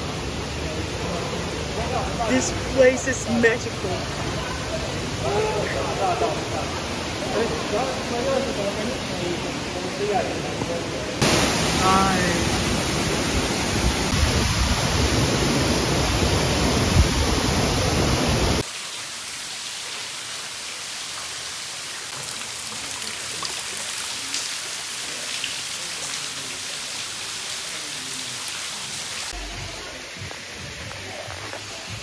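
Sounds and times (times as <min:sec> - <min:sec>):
rushing falling water: 0:00.0 - 0:32.0
water dripping: 0:18.6 - 0:26.3.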